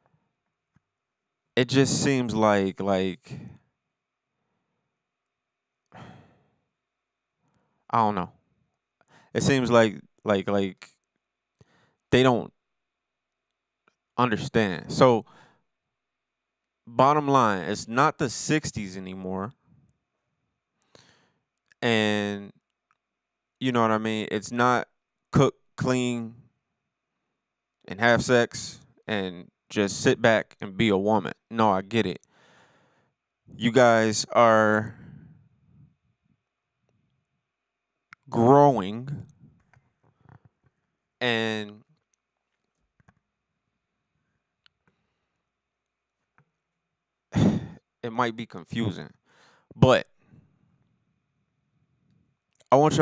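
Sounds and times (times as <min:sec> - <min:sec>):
man talking into microphone: 0:01.6 - 0:03.6, 0:07.9 - 0:08.3, 0:09.4 - 0:10.9, 0:12.2 - 0:12.5, 0:14.2 - 0:15.3, 0:16.9 - 0:19.5, 0:21.8 - 0:22.5, 0:23.6 - 0:24.8, 0:25.4 - 0:26.4, 0:27.9 - 0:32.2, 0:33.5 - 0:35.1, 0:38.2 - 0:39.3, 0:41.2 - 0:41.8, 0:47.4 - 0:49.1, 0:49.8 - 0:50.0, 0:52.7 - 0:53.0
man sighing: 0:06.0 - 0:06.4, 0:47.4 - 0:47.8
man breathing: 0:06.0 - 0:06.6, 0:09.0 - 0:09.4, 0:11.6 - 0:12.0, 0:15.3 - 0:15.6, 0:20.8 - 0:21.4, 0:32.3 - 0:33.2, 0:34.8 - 0:35.8, 0:49.2 - 0:49.7.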